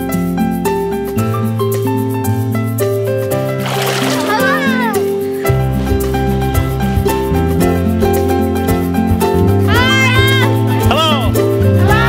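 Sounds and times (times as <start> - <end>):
background music: 0.0 - 12.0
water splashing: 3.4 - 5.3
child calling out: 4.2 - 5.0.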